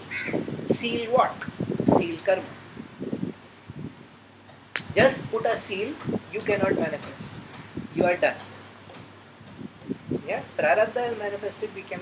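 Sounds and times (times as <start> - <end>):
hand clap: 4.8 - 5.0.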